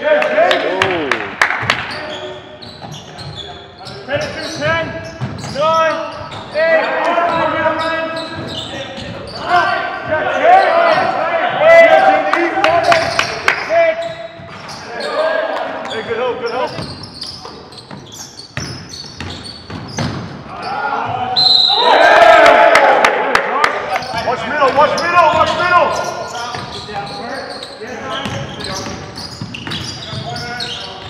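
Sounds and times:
sneaker squeaks: 1.6 - 11.2, 12.8 - 21.9, 23.9 - 31.0.

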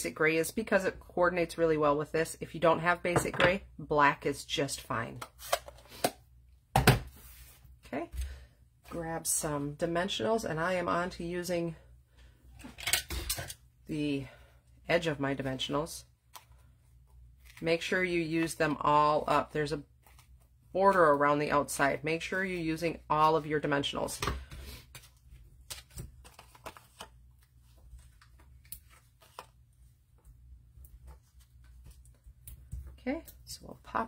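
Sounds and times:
paper rustling: 24.9 - 29.6.

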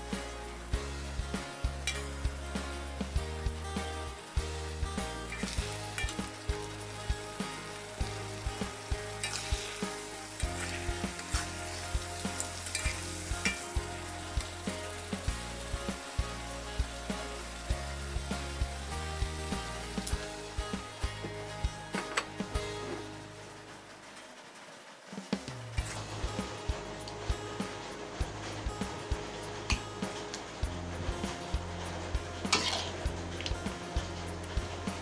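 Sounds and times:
food sizzling in a wok: 0.0 - 35.0
metal spatula scraping a wok: 5.3 - 6.3, 9.0 - 15.2, 27.8 - 35.0.

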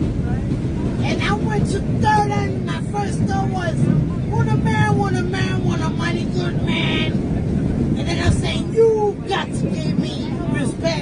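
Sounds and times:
subway train rumbling: 0.0 - 11.0.

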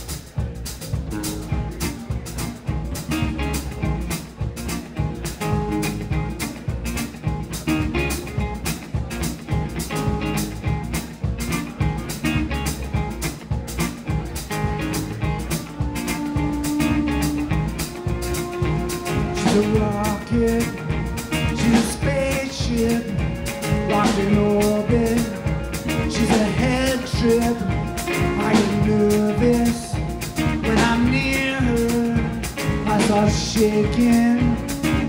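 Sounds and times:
acoustic guitar: 0.0 - 35.0
drum kit steady beat: 0.0 - 35.0
electric bass: 0.0 - 35.0
steel guitar long notes: 0.8 - 35.0.

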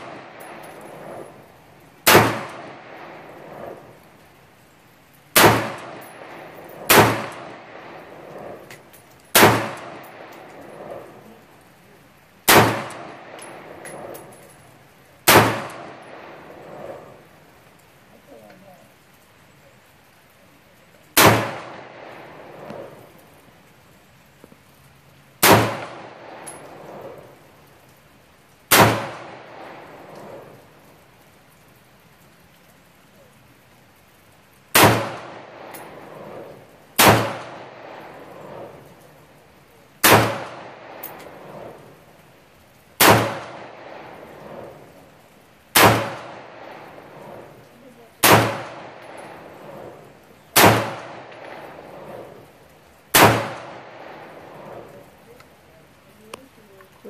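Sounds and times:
rifle shots with echo: 0.0 - 3.9, 5.3 - 8.7, 9.3 - 11.3, 12.4 - 14.3, 15.2 - 17.2, 21.2 - 23.2, 25.4 - 27.4, 28.7 - 30.6, 34.7 - 39.2, 40.0 - 42.0, 43.0 - 45.0, 45.7 - 47.6, 48.2 - 55.2.

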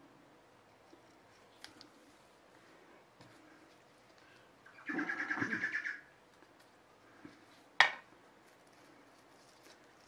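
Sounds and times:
bird warbling call: 4.7 - 6.1.

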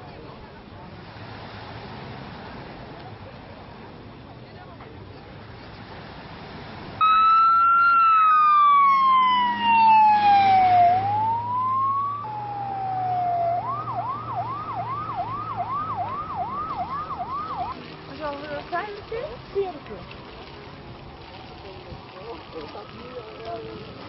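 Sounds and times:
emergency vehicle siren: 7.0 - 17.9.

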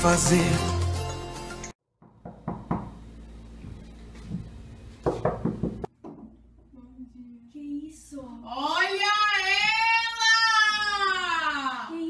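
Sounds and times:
fist knocking on wall: 2.0 - 3.0, 4.3 - 6.3.

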